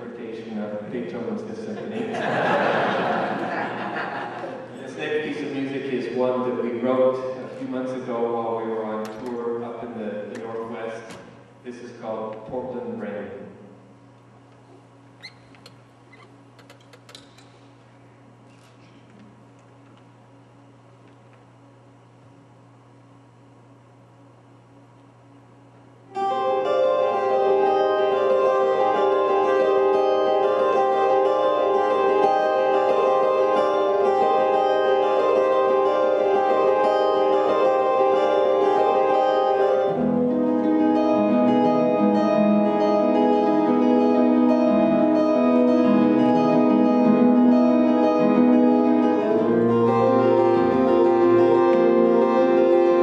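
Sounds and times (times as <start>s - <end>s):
acoustic guitars playing: 26.1s - 53.0s.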